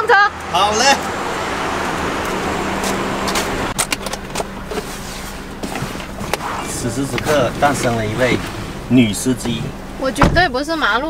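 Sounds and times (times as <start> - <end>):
passing car rush: 0.0 - 11.0
car door clicks: 2.3 - 4.9, 5.6 - 10.6.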